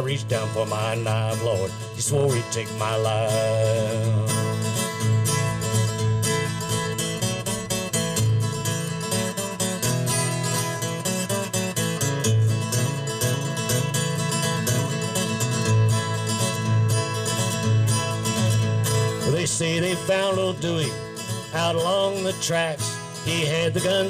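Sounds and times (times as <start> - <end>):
acoustic guitar strumming: 0.0 - 24.0.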